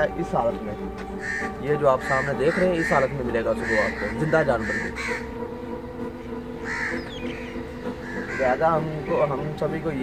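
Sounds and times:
crow cawing: 1.2 - 5.4, 6.6 - 8.8
low hum: 3.9 - 10.0.

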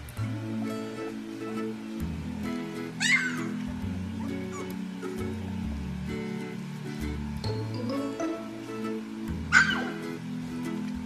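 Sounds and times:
background music: 0.0 - 11.0
cat meowing: 3.0 - 3.6, 9.5 - 10.0.

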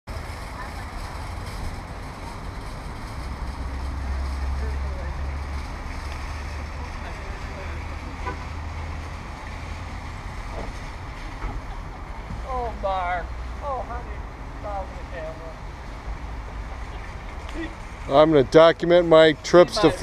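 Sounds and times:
faint outdoor background noise: 0.1 - 20.0.

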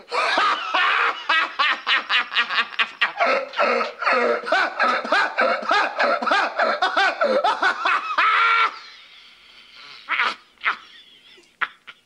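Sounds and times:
man laughing hysterically: 0.0 - 9.3, 10.0 - 12.0
breathy gasps: 3.2 - 4.5.

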